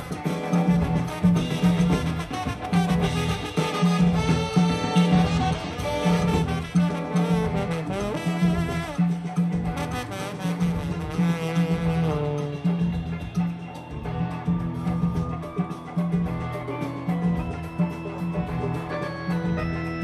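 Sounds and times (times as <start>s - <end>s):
bass and drums groove: 0.0s - 20.0s
congas: 0.0s - 20.0s
horn section playing: 0.1s - 13.4s.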